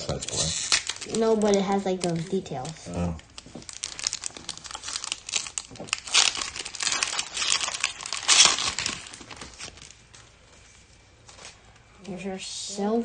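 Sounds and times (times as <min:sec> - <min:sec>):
foil wrapper tearing and crinkling: 0:00.0 - 0:10.3.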